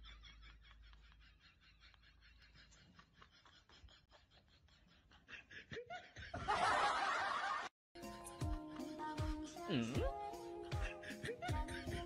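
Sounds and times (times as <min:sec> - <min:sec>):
person laughing: 0:10.6 - 0:12.0.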